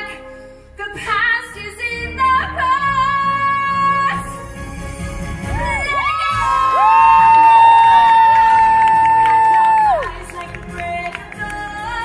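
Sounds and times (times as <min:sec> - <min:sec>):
stage musical music: 0:00.0 - 0:12.0
audience cheering and whooping: 0:05.5 - 0:10.4.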